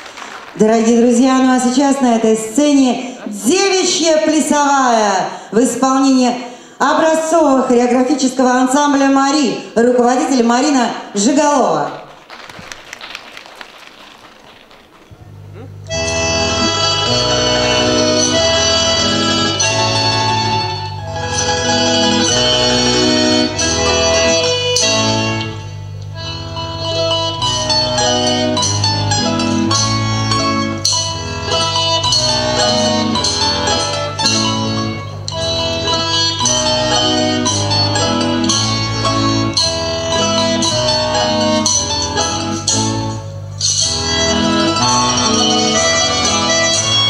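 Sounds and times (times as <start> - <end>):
lively folk dance music: 0.0 - 5.0, 11.2 - 47.0.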